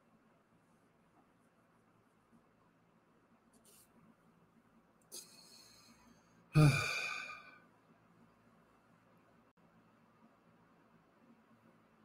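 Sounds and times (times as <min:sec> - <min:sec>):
man sighing: 0:06.5 - 0:07.6.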